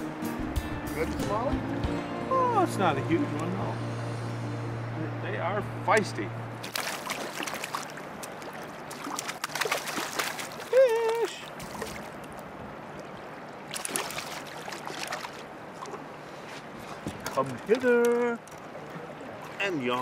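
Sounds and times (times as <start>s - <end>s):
fish splashing at water surface: 6.6s - 12.4s, 13.7s - 16.0s.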